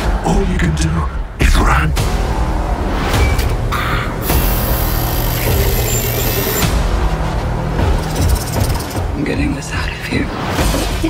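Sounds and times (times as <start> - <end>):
horror trailer music: 0.0 - 11.0.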